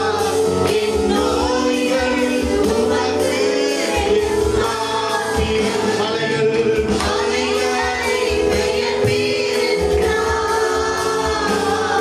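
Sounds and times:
group singing worship song: 0:00.0 - 0:12.0
keyboard accompaniment: 0:00.0 - 0:12.0.

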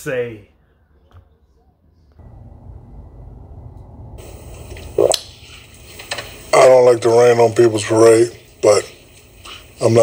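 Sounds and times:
tv broadcast sound with hiss: 0:03.7 - 0:10.0.

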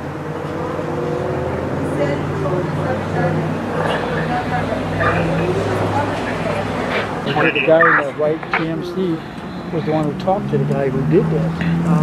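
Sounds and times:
people talking indistinctly: 0:01.8 - 0:12.0.

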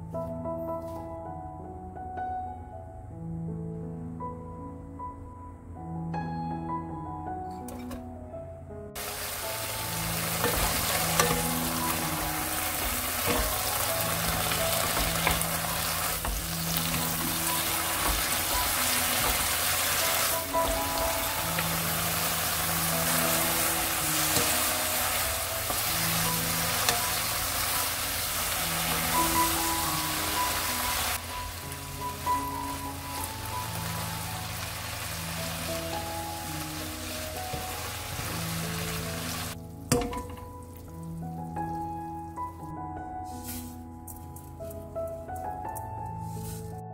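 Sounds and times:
wooden spatula stirring: 0:09.0 - 0:31.2
vegetables sizzling in a pan: 0:09.0 - 0:39.6.

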